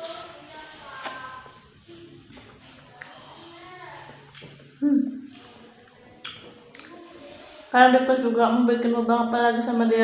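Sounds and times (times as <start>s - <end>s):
mouth sounds eating jelly: 0.1s - 7.6s.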